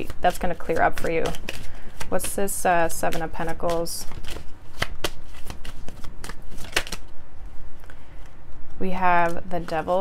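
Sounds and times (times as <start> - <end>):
cards being shuffled: 0.0 - 7.1, 9.0 - 10.0.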